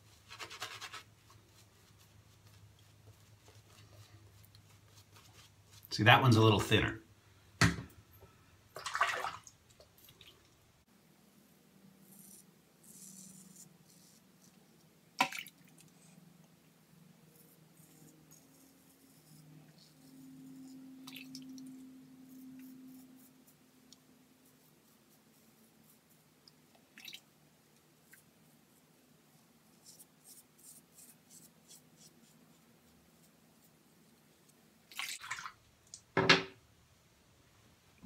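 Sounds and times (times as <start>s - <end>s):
water splash: 8.8s - 9.5s, 15.2s - 15.6s.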